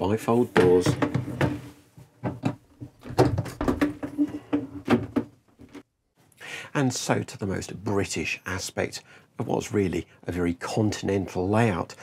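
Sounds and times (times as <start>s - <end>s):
shower door clicks and knocks: 2.2s - 4.2s.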